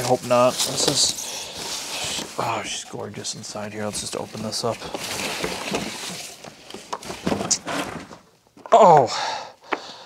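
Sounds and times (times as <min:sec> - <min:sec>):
tissue paper and cardboard rustling: 0:00.0 - 0:08.1.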